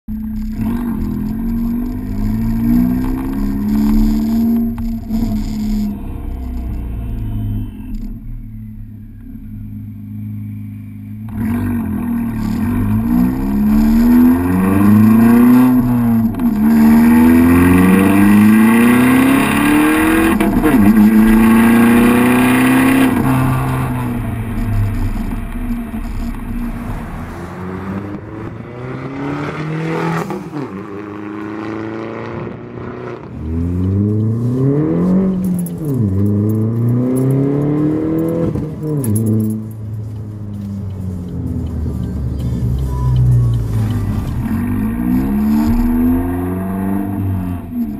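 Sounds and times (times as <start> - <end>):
car engine revving through gears: 0.1 - 8.6, 11.2 - 47.9.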